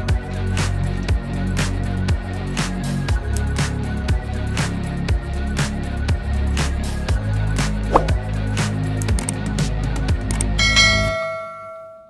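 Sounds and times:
background music: 0:00.0 - 0:11.6
bright bell chime: 0:10.6 - 0:12.0.

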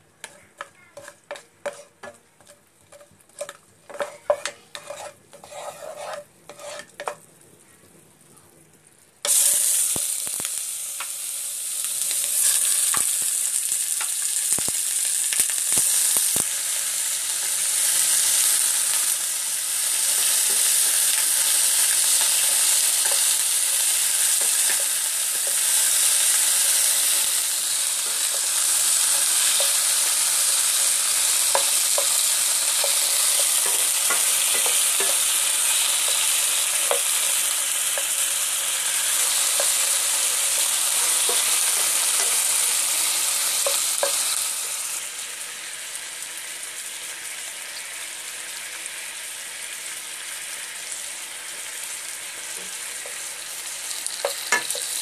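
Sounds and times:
chicken wings sizzling in oil: 0:00.0 - 0:55.0
utensil clicking in frying pan: 0:11.8 - 0:13.4, 0:14.0 - 0:16.5, 0:20.1 - 0:27.4, 0:30.8 - 0:38.2, 0:39.2 - 0:42.8, 0:43.6 - 0:44.4, 0:54.0 - 0:55.0.

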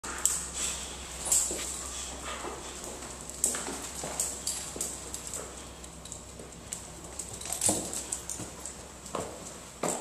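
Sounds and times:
dog claws clicking on floor: 0:01.2 - 0:10.0.

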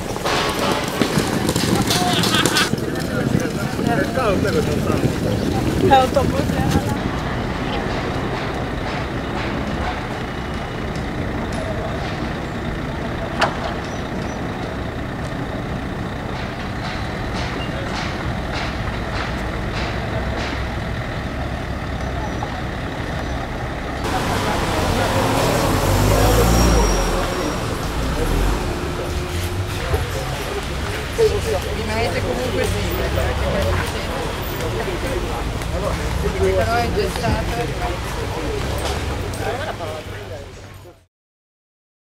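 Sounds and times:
outdoor background noise: 0:00.0 - 0:41.1
street noise: 0:00.0 - 0:41.1
vehicle engine: 0:00.0 - 0:41.1.

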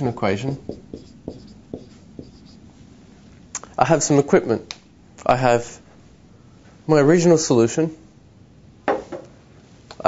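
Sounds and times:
pen writing strokes: 0:00.6 - 0:02.6.

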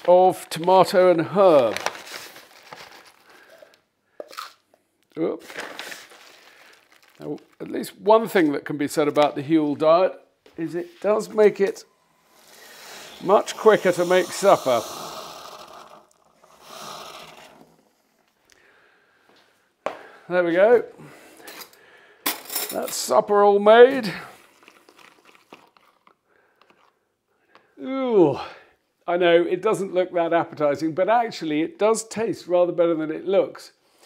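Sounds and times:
plastic bag crinkling: 0:00.0 - 0:08.0, 0:24.4 - 0:26.9
scraping sound: 0:12.3 - 0:17.8.

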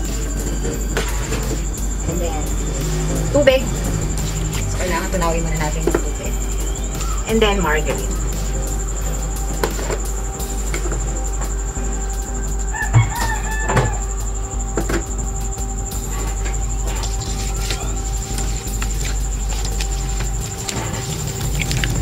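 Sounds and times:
electrical hum with high whine: 0:00.0 - 0:22.0
rooster crowing: 0:00.0 - 0:22.0.

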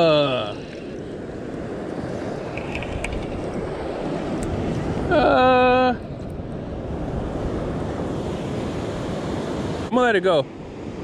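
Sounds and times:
surf washing: 0:00.0 - 0:11.0
wind rumbling on microphone: 0:00.5 - 0:09.9.

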